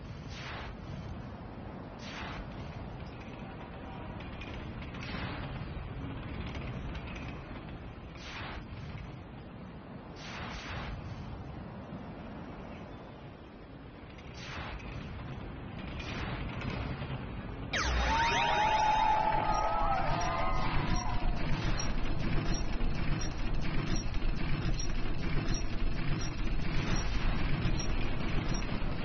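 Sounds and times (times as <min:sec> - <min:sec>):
swoosh with wavering tones: 0:17.8 - 0:23.5
spinning wheel clicking: 0:18.2 - 0:29.0.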